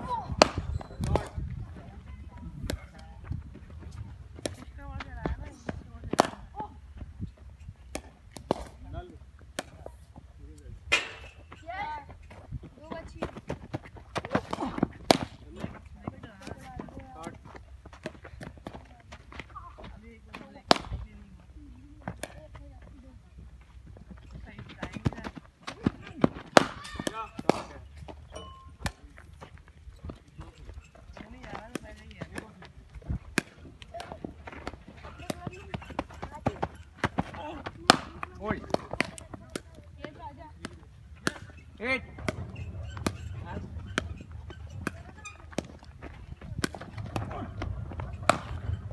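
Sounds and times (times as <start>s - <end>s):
cricket ball striking bat: 26.2s - 27.7s, 36.5s - 41.5s
low steady rumble: 38.7s - 48.9s.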